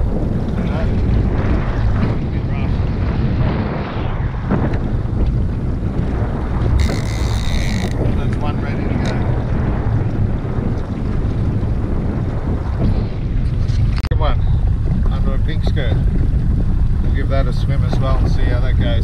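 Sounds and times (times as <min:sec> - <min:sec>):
water washing against hull: 0:00.0 - 0:19.0
wind buffeting microphone: 0:00.0 - 0:19.0
small boat engine running: 0:06.7 - 0:08.2.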